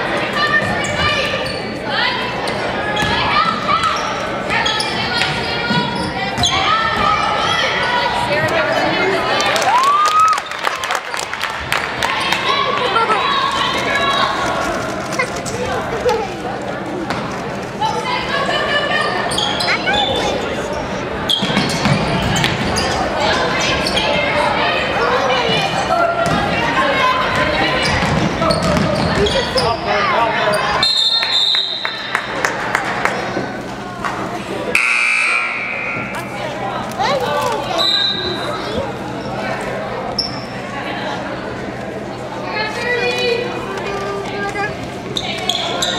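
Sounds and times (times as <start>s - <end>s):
crowd talking and calling out: 0.0s - 45.9s
ball bouncing on hardwood floor: 28.0s - 29.4s.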